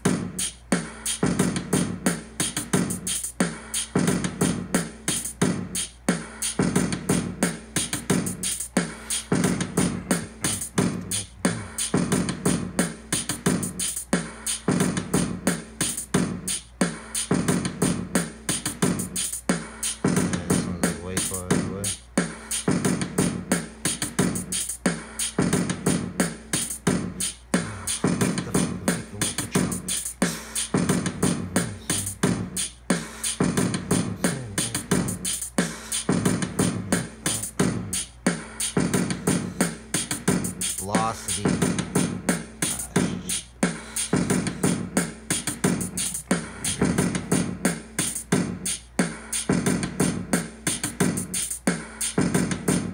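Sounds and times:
hip-hop drum beat: 0.0 - 52.9.

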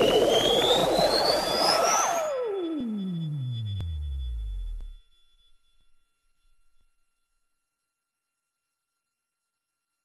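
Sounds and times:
dense noisy electronic texture: 0.0 - 5.0
synthesizer tone gliding upward: 0.0 - 5.0.

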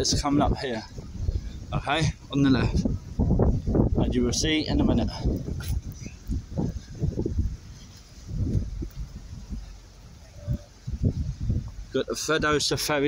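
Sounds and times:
handheld microphone rumbles and bumps: 0.0 - 9.7, 10.4 - 12.0.

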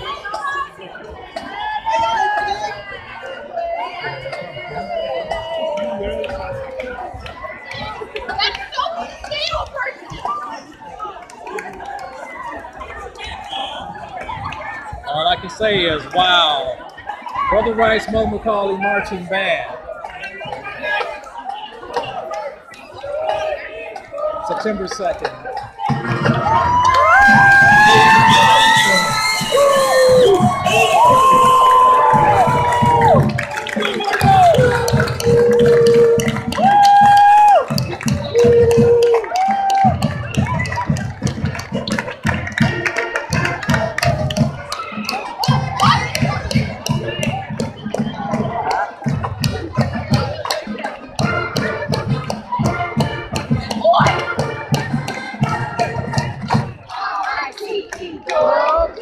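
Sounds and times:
crowd chatter and cheering: 0.0 - 59.0
marching band playing: 25.8 - 56.9.

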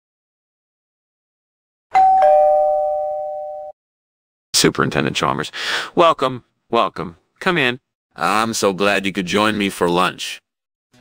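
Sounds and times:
two-note doorbell chime: 1.9 - 3.8.

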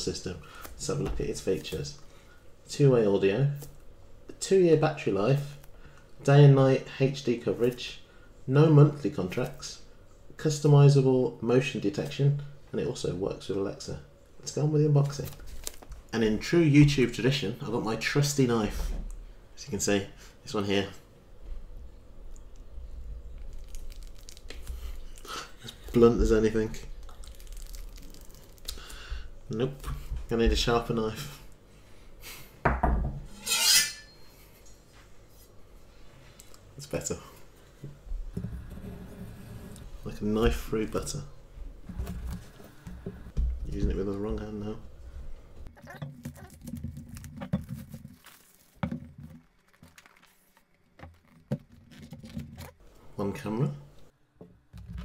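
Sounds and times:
cardboard crunching and crinkling: 46.3 - 52.8.

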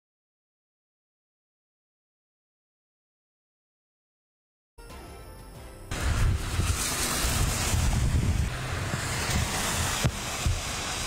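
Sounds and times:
heavy rain: 5.9 - 11.0
wind rumbling on microphone: 5.9 - 11.0.

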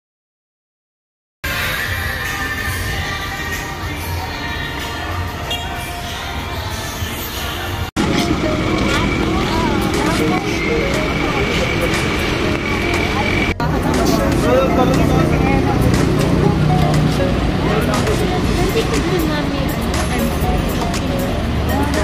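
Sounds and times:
people chatting and calling: 1.5 - 22.0
vehicle engine running: 8.0 - 22.0.

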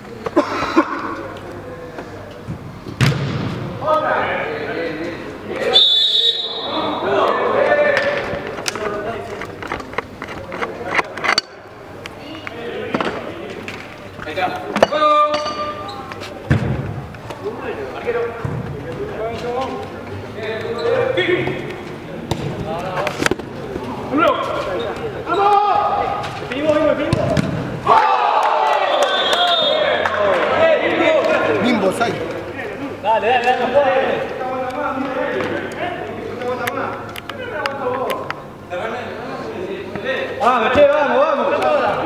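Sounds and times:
football kick thuds: 3.0 - 3.6
players shouting indoors: 5.6 - 8.3, 25.2 - 26.3, 27.8 - 31.6.

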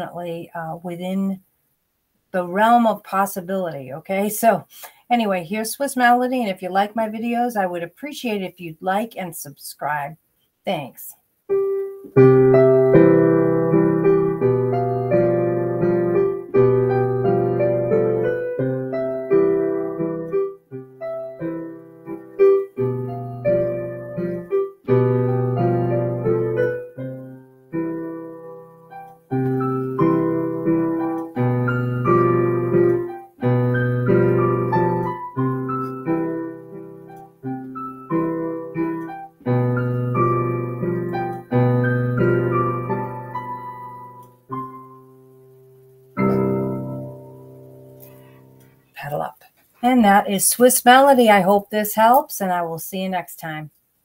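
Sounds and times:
digital piano chords: 11.5 - 49.0.

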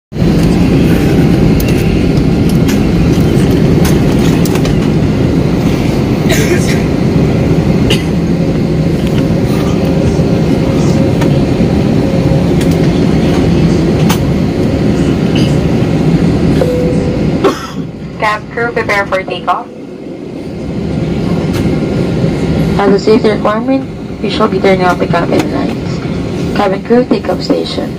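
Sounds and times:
jet engines running: 0.1 - 27.9.

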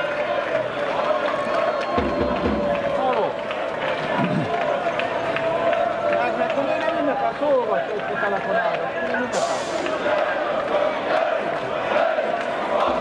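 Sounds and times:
crowd singing and shouting: 0.0 - 2.8, 3.7 - 13.0.

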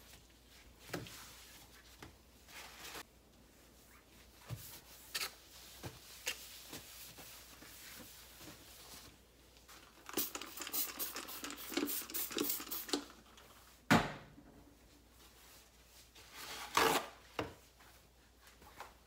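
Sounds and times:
spray bottle squirts: 10.0 - 13.1.

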